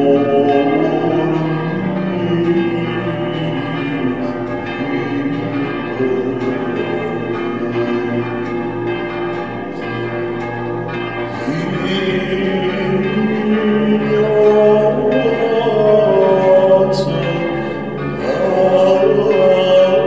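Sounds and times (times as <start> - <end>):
church bells pealing: 0.0 - 20.0.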